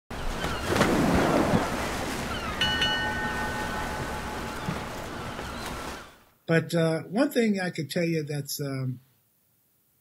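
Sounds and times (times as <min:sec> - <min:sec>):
ocean surf washing: 0:00.1 - 0:06.3
bell ringing: 0:02.4 - 0:05.3.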